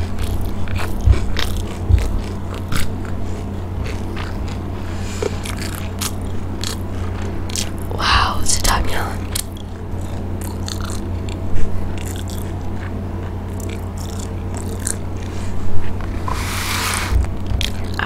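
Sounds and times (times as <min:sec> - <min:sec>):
biting and chewing crispy food: 0:00.0 - 0:07.9, 0:09.2 - 0:18.0
low electrical hum: 0:00.0 - 0:18.0.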